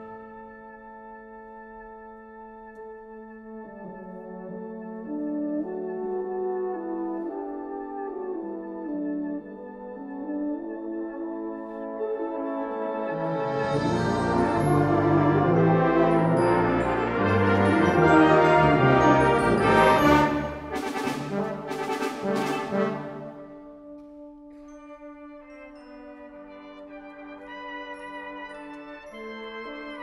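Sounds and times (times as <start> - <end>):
brass band playing: 3.4 - 24.0.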